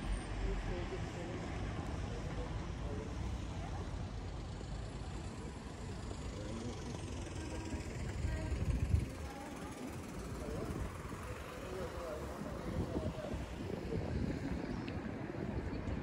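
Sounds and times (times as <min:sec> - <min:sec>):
faint distant voices: 0:00.0 - 0:16.0
low street rumble: 0:00.0 - 0:16.0.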